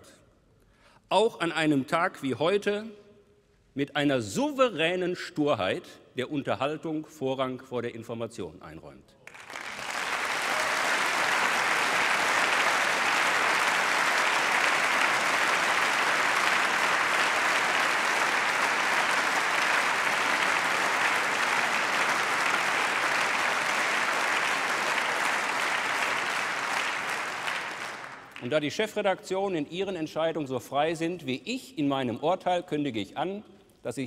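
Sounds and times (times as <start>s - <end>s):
large crowd applauding: 9.3s - 28.6s.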